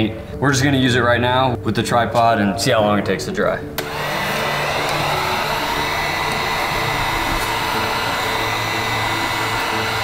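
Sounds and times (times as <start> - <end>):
heat gun blowing air: 3.8 - 10.0.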